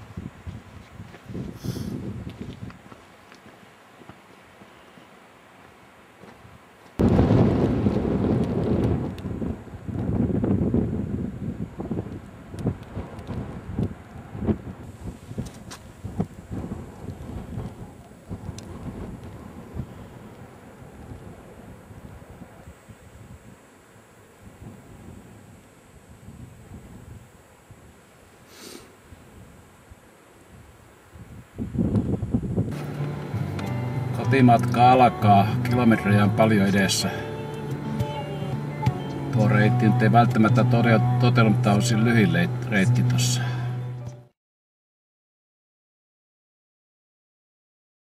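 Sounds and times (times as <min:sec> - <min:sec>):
wind gusting across microphone: 0:00.0 - 0:03.1, 0:06.4 - 0:28.0, 0:29.0 - 0:33.4.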